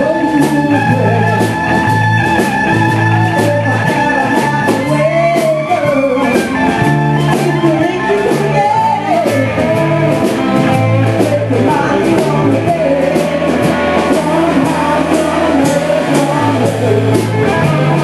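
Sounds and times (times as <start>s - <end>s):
blues-rock band playing: 0.0s - 18.0s
sliding melody line: 0.0s - 18.0s
steady drum beat: 0.0s - 18.0s.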